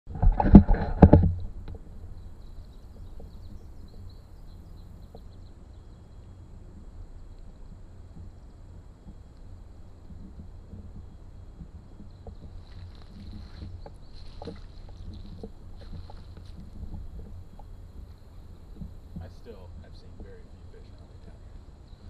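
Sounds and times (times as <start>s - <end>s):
wind rumble on microphone: 0.1s - 22.0s.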